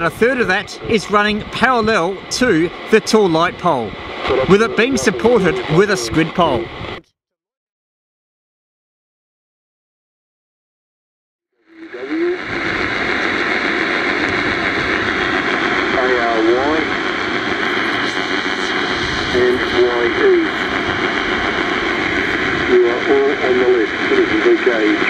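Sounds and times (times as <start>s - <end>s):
radio hiss and static: 0.0s - 7.0s, 11.6s - 25.0s.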